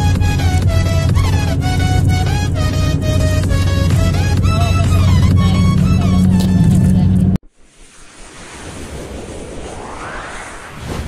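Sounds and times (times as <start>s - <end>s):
rising whoosh: 7.8s - 11.0s.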